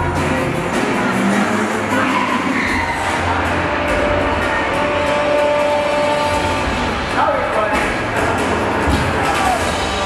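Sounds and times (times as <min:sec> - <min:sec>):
loud music with steady beat: 0:00.0 - 0:10.0.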